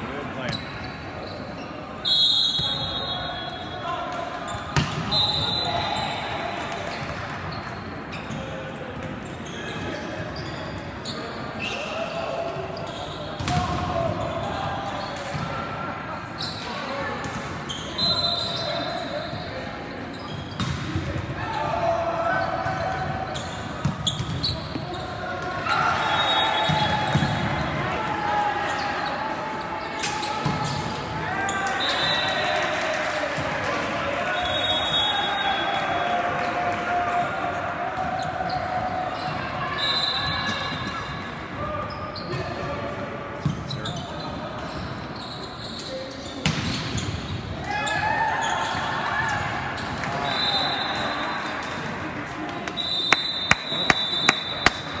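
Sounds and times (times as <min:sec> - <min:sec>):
crowd shouting in echoing gym: 0:00.0 - 0:55.0.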